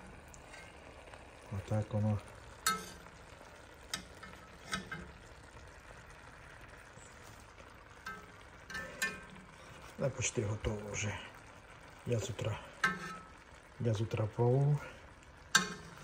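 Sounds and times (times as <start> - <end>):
meat sizzling: 0.0 - 16.0
metal spoon clinking against pot: 2.6 - 3.0, 8.0 - 9.3, 12.8 - 13.3, 15.5 - 16.0.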